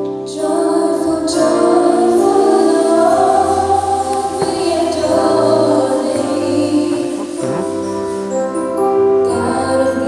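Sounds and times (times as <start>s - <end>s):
choir singing long notes: 0.3s - 8.6s.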